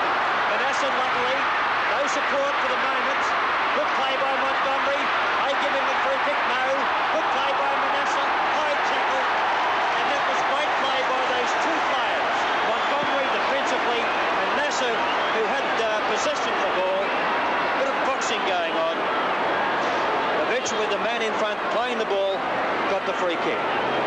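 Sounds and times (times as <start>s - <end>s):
crowd shouting: 0.0s - 24.0s.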